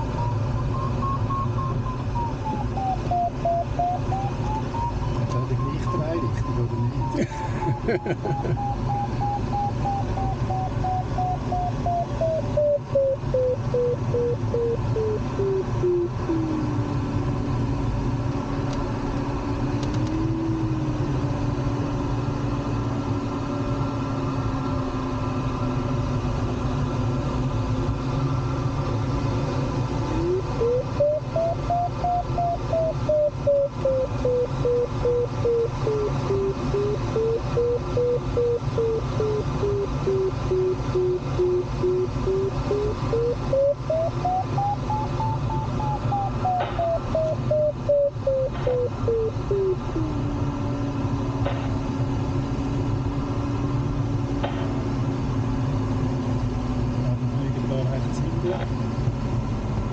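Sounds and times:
variometer tone beeping: 0.0 - 17.1, 30.1 - 50.3
airflow noise in cockpit: 0.0 - 59.9.

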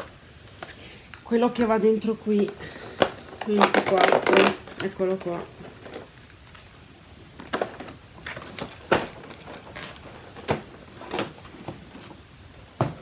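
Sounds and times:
packaging being handled: 2.0 - 12.3.

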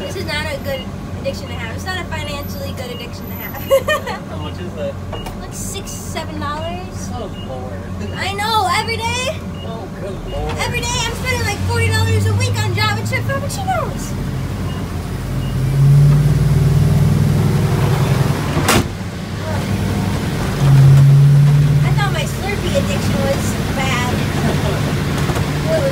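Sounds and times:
truck engine drone: 0.0 - 25.9.

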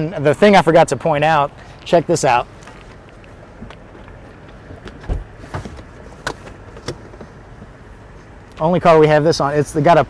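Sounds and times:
car door clicks and knocks: 4.7 - 7.7
car door thump: 4.7 - 7.7.

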